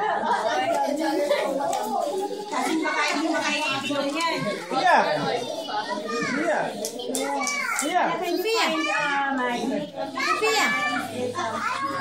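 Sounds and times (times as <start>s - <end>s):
children talking and exclaiming: 0.0s - 12.0s.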